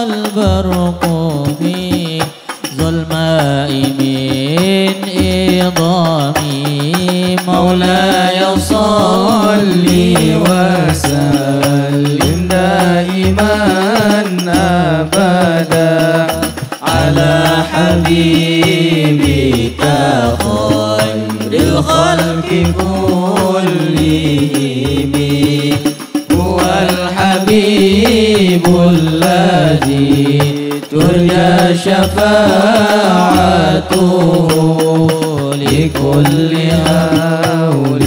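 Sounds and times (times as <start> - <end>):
frame drums: 0.0 - 38.0
men singing: 0.0 - 38.0.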